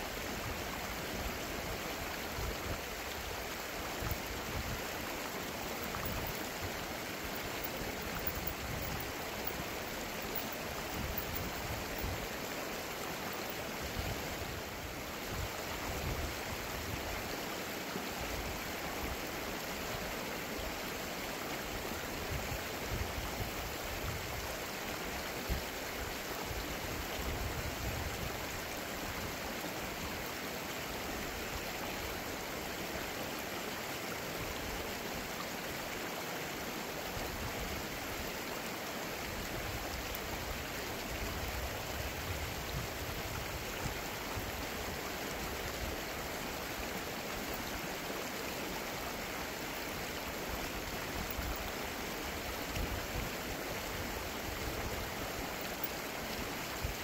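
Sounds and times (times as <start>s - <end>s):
river flowing over rocks: 0.0s - 57.0s.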